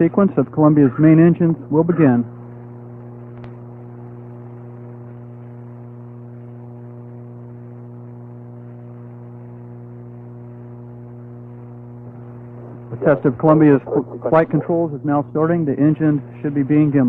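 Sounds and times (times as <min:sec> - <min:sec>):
low electrical hum: 0:00.0 - 0:17.0.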